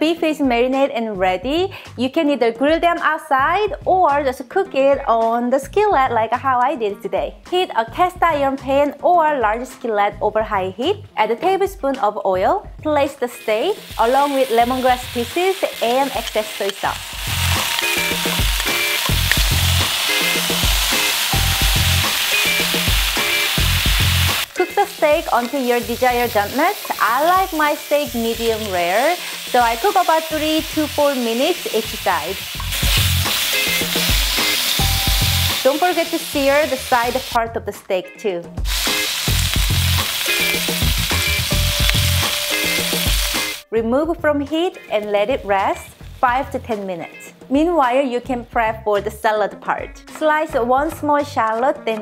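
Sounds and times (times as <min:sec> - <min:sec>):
background music with bass line: 0:00.4 - 0:52.0
steak sizzling in a skillet: 0:13.3 - 0:37.4, 0:38.6 - 0:43.6.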